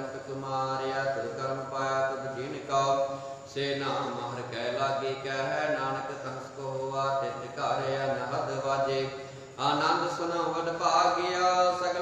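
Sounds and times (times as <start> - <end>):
man chanting: 0.0 - 12.0
steady low hum: 0.0 - 12.0.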